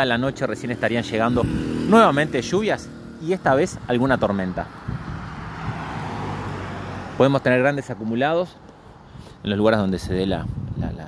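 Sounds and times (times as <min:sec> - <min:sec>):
car engine hum: 0:00.0 - 0:09.2.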